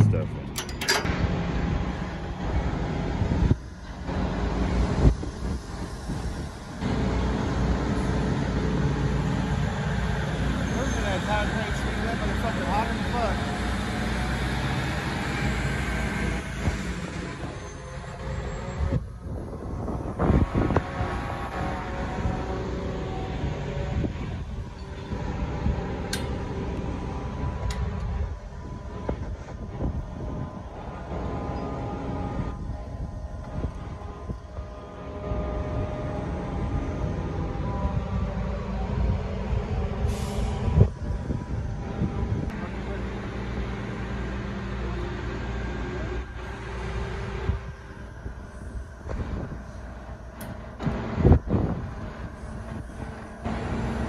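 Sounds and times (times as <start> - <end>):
wind buffeting microphone: 0.0 - 8.9, 18.3 - 42.6, 47.1 - 54.0
crane rumbling: 0.0 - 54.0.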